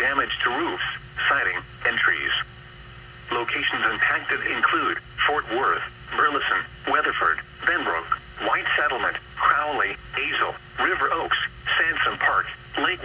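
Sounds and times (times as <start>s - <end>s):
synthesized voice through speaker: 0.0s - 2.5s, 3.3s - 13.0s
steady low hum: 0.0s - 13.0s.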